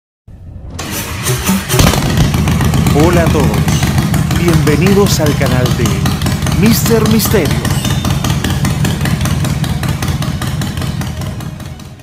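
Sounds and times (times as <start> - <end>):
music: 0.3 - 2.4
motorcycle engine starting and running: 0.6 - 12.0.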